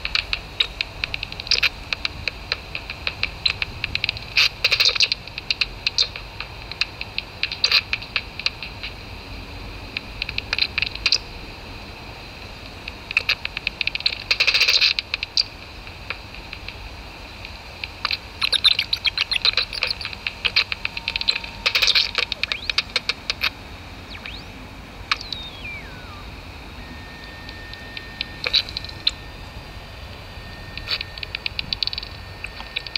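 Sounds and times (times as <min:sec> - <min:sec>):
bat echolocation clicks: 0:00.0 - 0:09.0, 0:09.9 - 0:11.2, 0:12.6 - 0:26.1, 0:27.2 - 0:29.3, 0:30.6 - 0:32.9
steady hiss: 0:00.0 - 0:32.9
falling whistle: 0:24.0 - 0:32.9.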